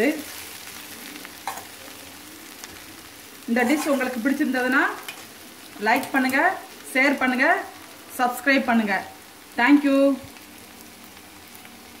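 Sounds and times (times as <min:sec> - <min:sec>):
curry sizzling in a pan: 0:00.0 - 0:12.0.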